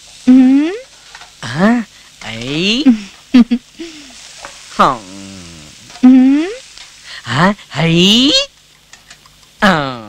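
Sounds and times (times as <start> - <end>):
soundtrack hiss: 0.0 - 10.0
person making wordless cries: 4.8 - 6.6.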